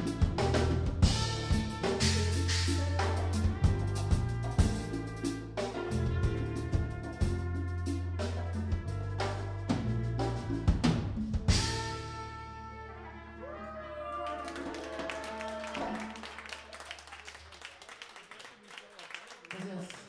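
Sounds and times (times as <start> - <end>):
live latin band playing: 0.0 - 13.8, 14.4 - 16.7
audience clapping: 13.9 - 20.0.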